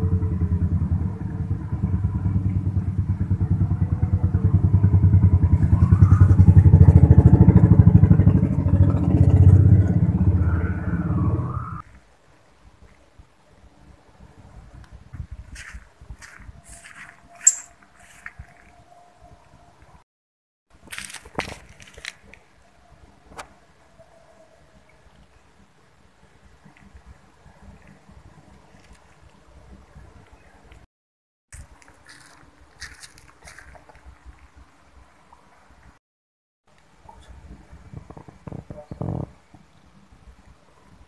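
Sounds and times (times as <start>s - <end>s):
sharp shoe scrape: 15.5s - 18.4s
footsteps scuffing on concrete: 15.5s - 18.6s, 31.5s - 34.1s.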